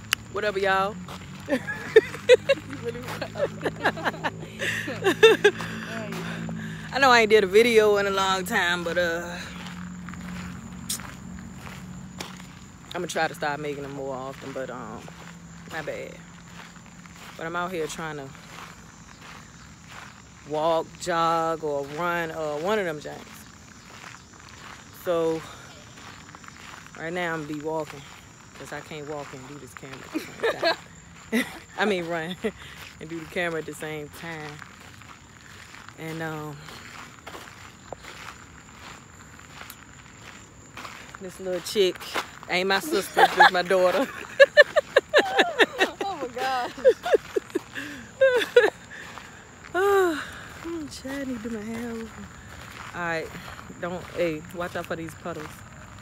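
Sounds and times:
footsteps walking: 0:00.0 - 0:56.0.

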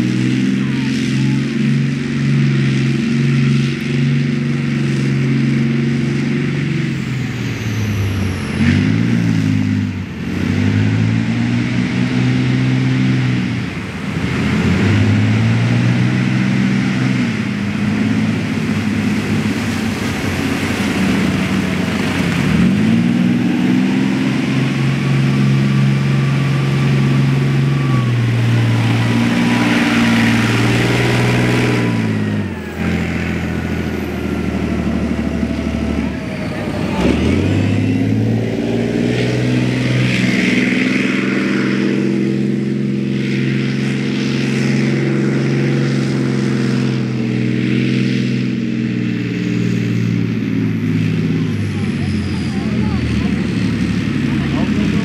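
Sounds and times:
tank diesel engine revving: 0:00.0 - 0:55.0
thin whine dropping in pitch: 0:14.2 - 0:55.0.

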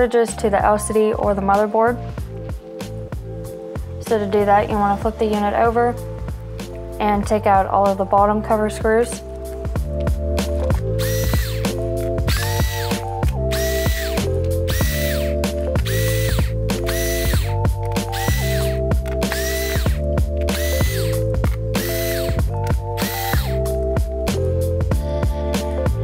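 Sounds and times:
background music: 0:00.0 - 0:26.0
electric screwdriver whirring: 0:11.0 - 0:23.7.

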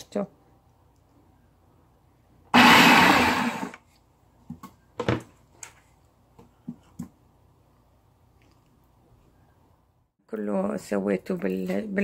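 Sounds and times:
electric blender blending: 0:02.5 - 0:03.8.

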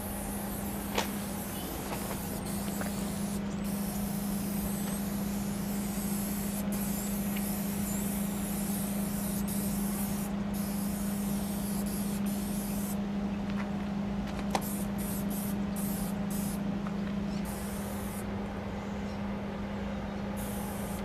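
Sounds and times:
spray paint can hissing: 0:00.0 - 0:13.0, 0:14.6 - 0:16.6, 0:17.4 - 0:18.2, 0:20.4 - 0:21.0
steady low hum: 0:00.0 - 0:21.0.

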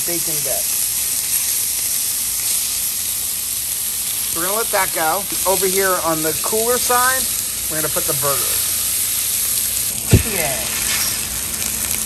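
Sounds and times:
bacon sizzling on griddle: 0:00.0 - 0:12.0.

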